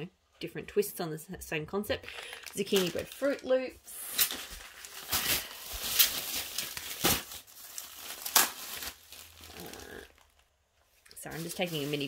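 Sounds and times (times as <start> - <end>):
sharp plastic crackles: 2.0 - 3.5, 4.1 - 12.0
plastic packaging crinkling: 2.0 - 12.0.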